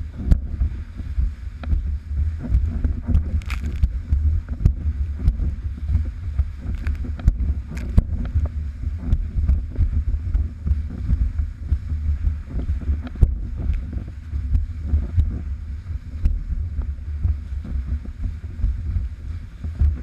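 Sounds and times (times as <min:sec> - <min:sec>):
wind buffeting microphone: 0:00.0 - 0:20.0
sharp ticks and knocks: 0:06.6 - 0:08.5.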